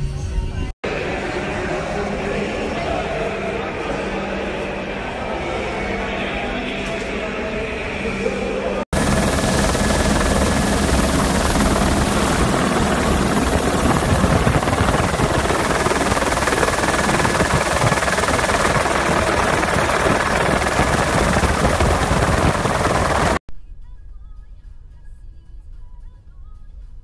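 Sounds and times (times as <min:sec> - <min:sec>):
helicopter rotor and engine: 0:08.9 - 0:23.4.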